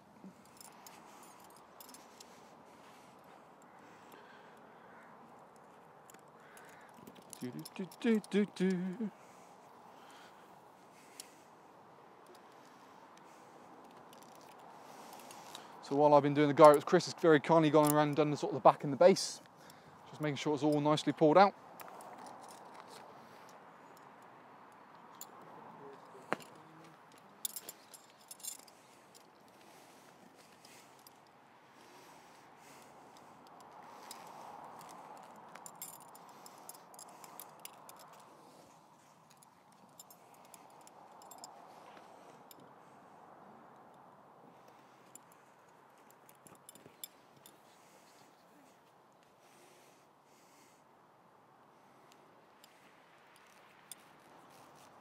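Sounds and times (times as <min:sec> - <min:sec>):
outdoor background noise: 0:00.0 - 0:55.0
small metallic clinks: 0:00.2 - 0:04.7, 0:05.3 - 0:11.4, 0:12.2 - 0:18.4, 0:21.7 - 0:43.0, 0:43.8 - 0:48.4, 0:52.0 - 0:55.0.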